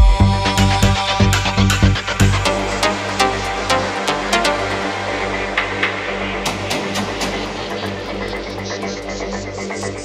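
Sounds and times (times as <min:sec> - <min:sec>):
electronic dance music: 0:00.7 - 0:10.0.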